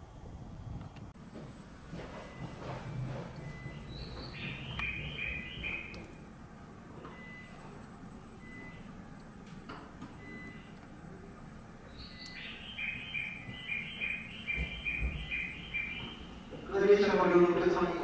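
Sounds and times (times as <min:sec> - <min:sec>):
low background hum: 0:00.0 - 0:18.0
bird chirping: 0:03.4 - 0:06.2, 0:11.8 - 0:16.8.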